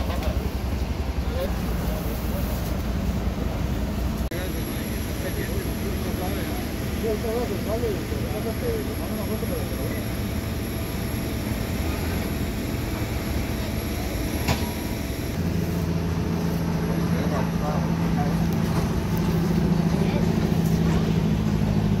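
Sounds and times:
low engine rumble: 0:00.0 - 0:22.0.

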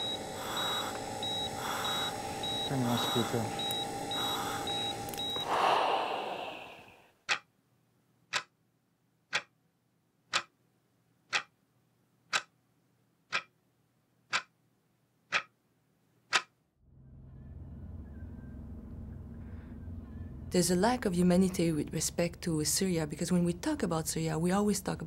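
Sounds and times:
background noise: 0:05.2 - 0:16.8
clock ticking: 0:07.2 - 0:07.5, 0:08.3 - 0:08.6, 0:09.2 - 0:09.6, 0:10.3 - 0:10.6, 0:11.2 - 0:11.6, 0:12.3 - 0:12.6, 0:13.3 - 0:13.6, 0:14.3 - 0:14.6, 0:15.2 - 0:15.6, 0:16.3 - 0:16.6.

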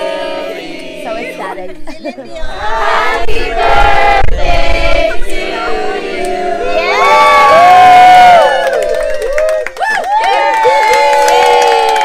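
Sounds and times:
crowd cheering and whooping: 0:06.6 - 0:12.0
hand clapping: 0:08.6 - 0:12.0.

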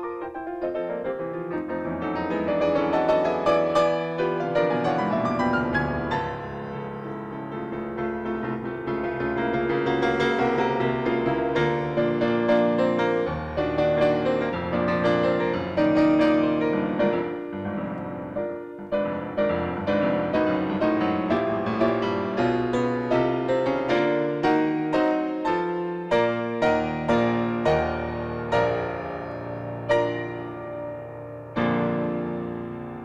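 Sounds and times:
solo piano piece: 0:00.0 - 0:33.0.

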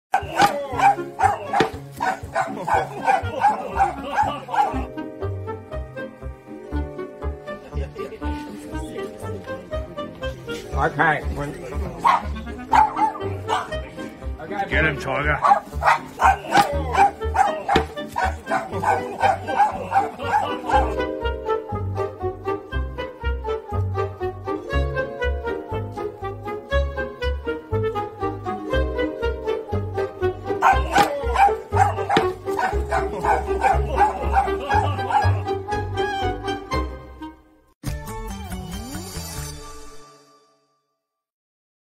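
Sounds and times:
dog barking: 0:00.1 - 0:04.9, 0:12.0 - 0:13.8, 0:15.4 - 0:21.0, 0:30.6 - 0:35.4
background music with low beat: 0:00.1 - 0:39.5.

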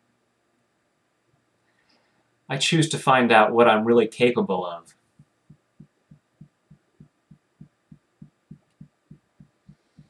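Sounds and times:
fingertips tapping on body: 0:05.2 - 0:10.0.

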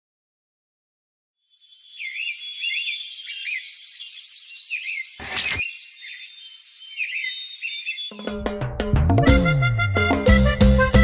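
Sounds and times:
birds chirping: 0:01.4 - 0:08.5.

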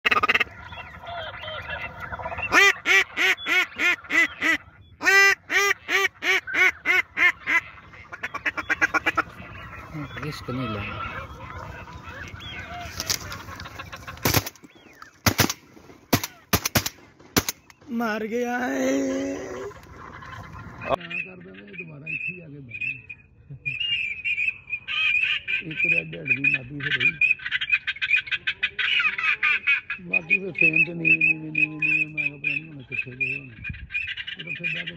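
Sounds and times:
duck call quacks: 0:00.0 - 0:14.4
waterfowl calling: 0:00.0 - 0:34.9.

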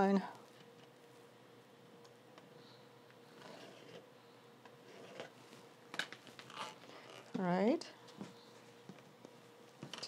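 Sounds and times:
pen scratching on fabric: 0:04.9 - 0:05.3.

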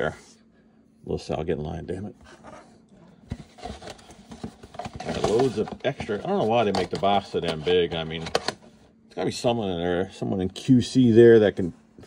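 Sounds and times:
hands handling cardboard box: 0:02.2 - 0:08.6.

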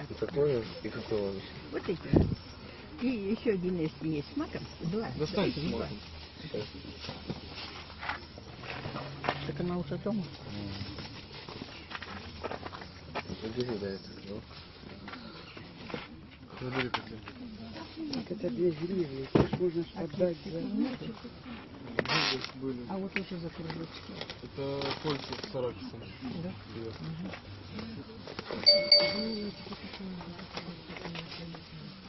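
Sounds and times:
voices talking: 0:28.6 - 0:30.1.

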